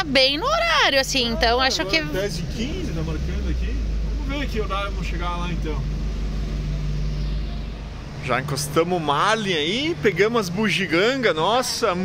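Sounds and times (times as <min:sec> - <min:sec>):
engine low rumble: 0:00.0 - 0:12.0.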